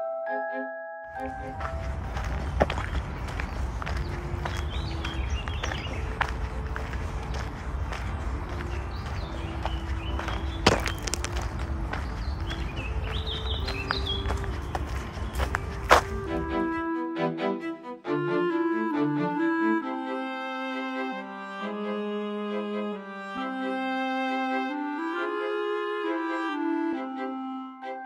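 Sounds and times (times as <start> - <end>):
footsteps on sandy path: 1.2 - 16.8
bird chirps: 2.3 - 11.2, 11.9 - 16.2.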